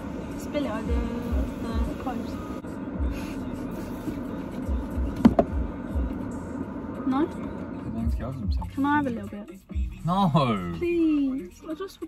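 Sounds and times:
low rumble in car cabin: 0.0s - 12.0s
soft low thumps: 4.7s - 6.2s.

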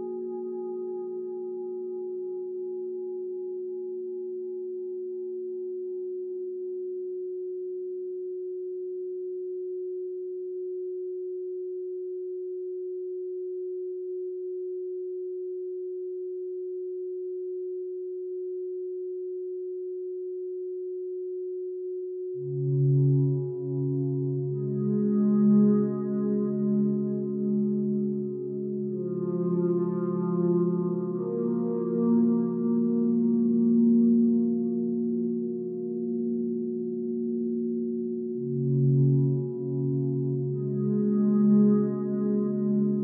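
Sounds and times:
low singing bowl tone: 0.0s - 43.0s
steady pure tone: 22.4s - 43.0s.

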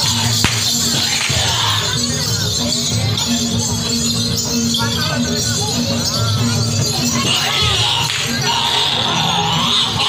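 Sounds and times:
bright metallic clashing: 0.1s - 1.9s.

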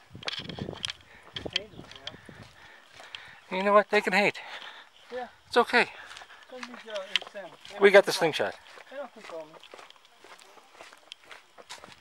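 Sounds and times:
footsteps on gritty pavement: 0.0s - 12.0s.

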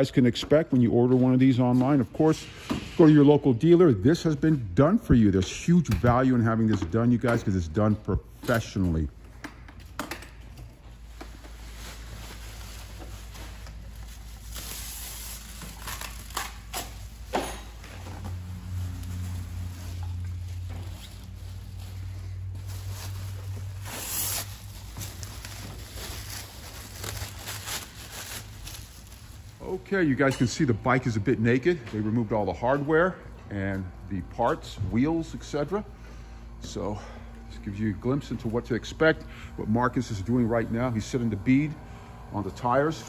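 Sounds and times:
low steady hum: 0.0s - 43.0s
plastic and bubble wrap crinkling: 10.9s - 30.0s.

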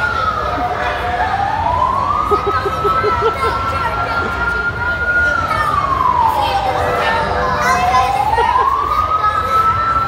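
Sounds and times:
background chatter: 0.0s - 10.0s
siren wailing: 0.0s - 10.0s.

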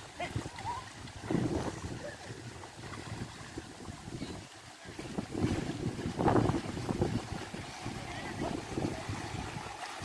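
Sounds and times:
water sloshing and splashing: 0.0s - 10.0s
wind buffeting microphone: 0.0s - 10.0s.

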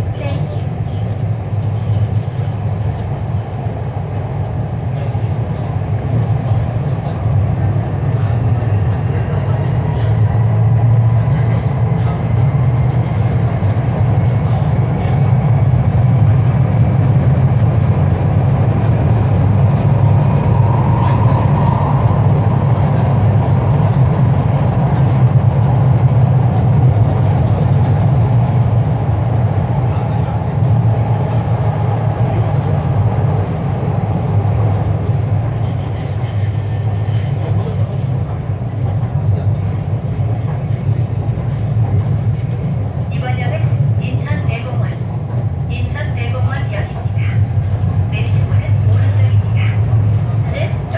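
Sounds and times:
train rumbling through tunnel: 0.0s - 50.9s.

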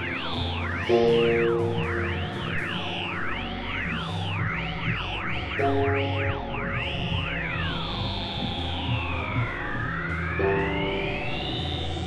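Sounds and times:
high synthesizer tones gliding: 0.0s - 12.0s
steady low drone: 0.0s - 12.0s.

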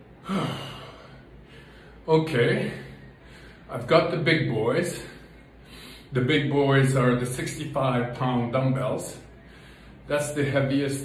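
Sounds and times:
man sighing: 0.2s - 1.2s.

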